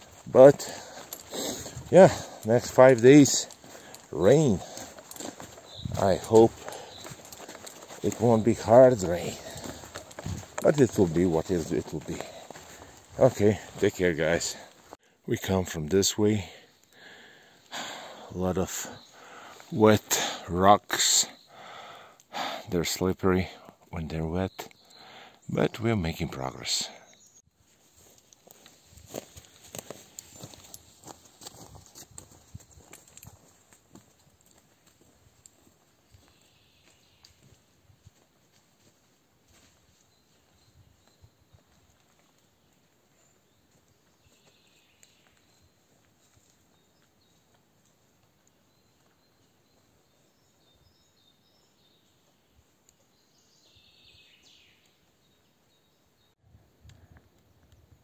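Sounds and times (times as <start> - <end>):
footsteps on wet rocks and leaves: 0.0 - 15.0, 27.8 - 43.0.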